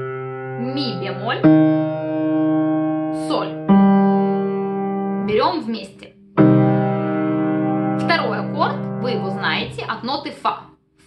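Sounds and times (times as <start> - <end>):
piano low held notes: 0.0 - 10.2.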